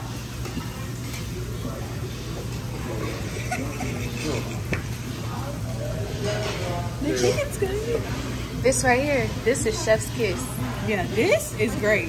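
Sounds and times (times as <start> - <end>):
faint voices and chatter: 0.0 - 12.0.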